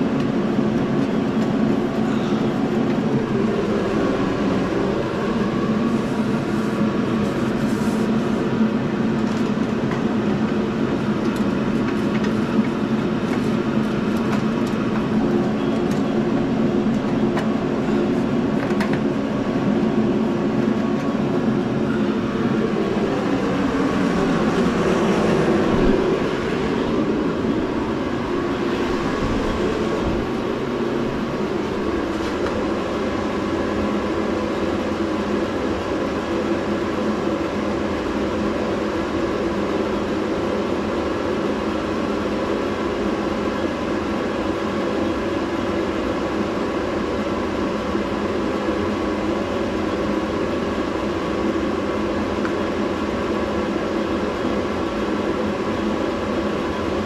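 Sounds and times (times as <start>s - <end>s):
mechanical drone: 0.0s - 7.6s, 8.4s - 43.0s.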